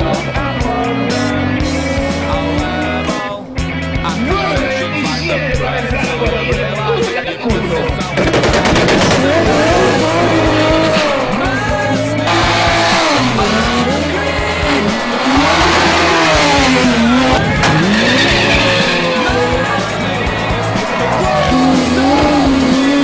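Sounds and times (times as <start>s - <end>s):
music with bass line: 0.0s - 23.0s
racing car engines revving: 0.0s - 23.0s.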